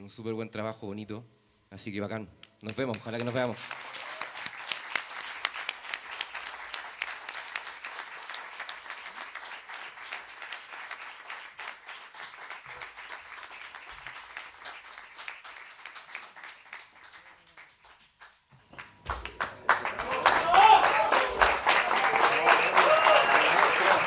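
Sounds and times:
many hands clapping: 2.4 - 24.0.

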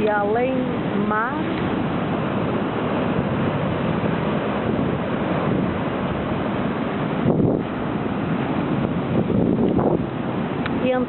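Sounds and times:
surf breaking over rocks: 0.0 - 11.0
wind buffeting microphone: 0.0 - 11.0.

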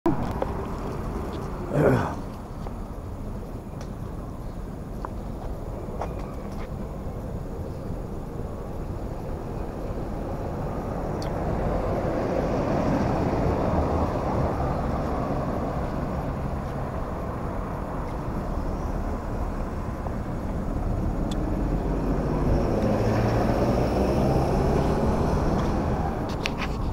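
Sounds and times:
cars passing: 0.1 - 26.9.

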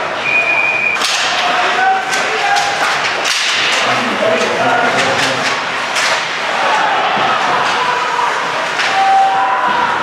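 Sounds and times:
arena crowd noise: 0.0 - 10.0
hockey sticks and puck cracking: 0.9 - 10.0
people shouting: 1.2 - 3.2, 6.3 - 10.0.

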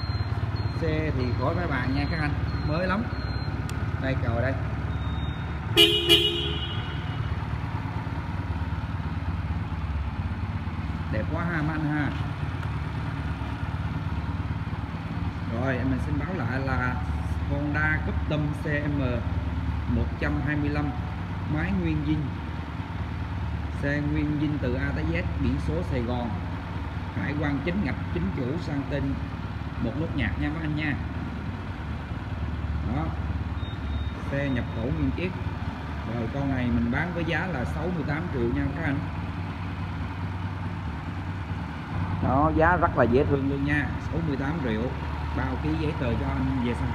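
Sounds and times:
motorcycle engine idling: 0.0 - 46.9
motorcycle horn beep: 4.9 - 7.3.

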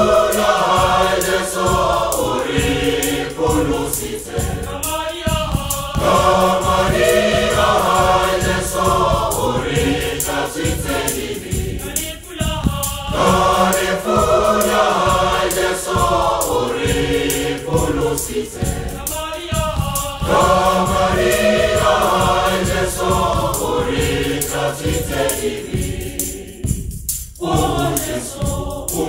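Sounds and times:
choir singing a hymn in harmony: 0.0 - 29.0
steady beat: 0.0 - 29.0.

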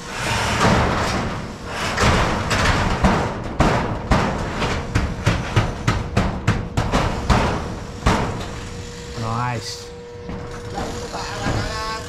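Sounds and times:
steel roof sheets rattling and banging: 0.1 - 8.7, 10.3 - 12.0.

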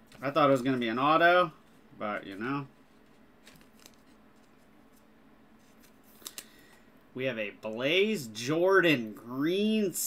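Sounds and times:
plastic card sleeve rustling: 1.7 - 6.8.

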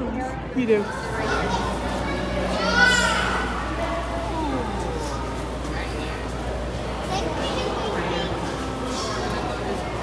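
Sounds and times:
children chattering in a hall: 0.0 - 10.0.

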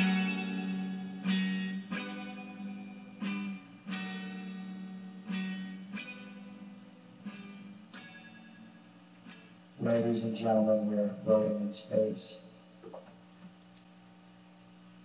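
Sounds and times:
guitar chords through effects: 0.0 - 12.0.

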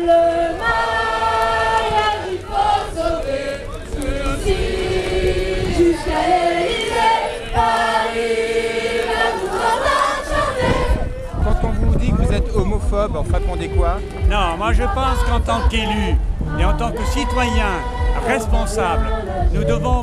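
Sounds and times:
crowd singing in unison: 0.0 - 20.0.

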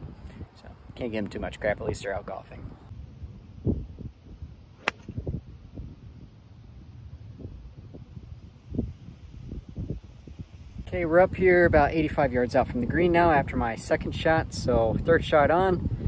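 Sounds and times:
wind rumble on microphone: 0.0 - 16.0
golf club striking ball: 4.8 - 5.2.

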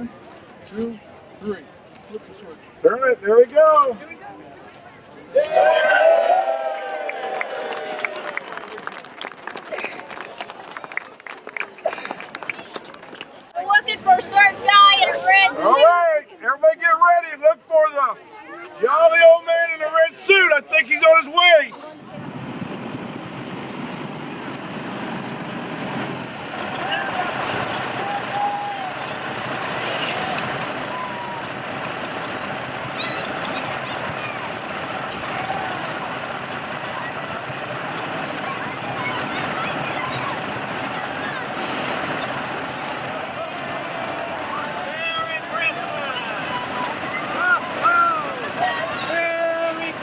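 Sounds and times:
fire engine running: 0.0 - 15.8, 16.9 - 50.0
crowd chatter: 0.0 - 50.0
air brakes hissing: 29.7 - 30.5, 41.5 - 42.2.

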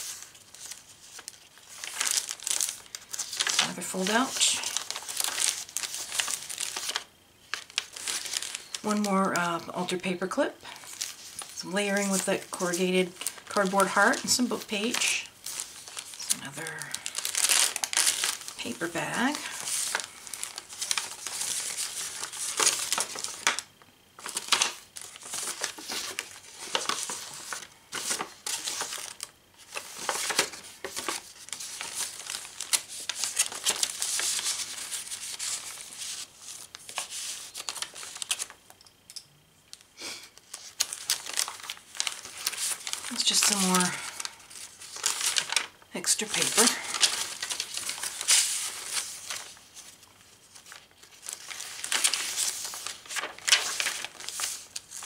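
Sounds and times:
paper rustling and crinkling: 0.0 - 38.6, 39.7 - 55.0.

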